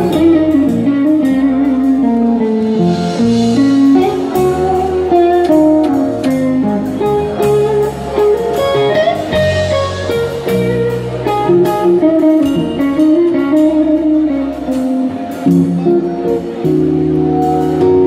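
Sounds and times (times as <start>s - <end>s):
bass guitar: 0.0s - 18.0s
drums: 0.0s - 18.0s
electric guitar melody: 0.0s - 18.0s
keyboard: 0.0s - 18.0s.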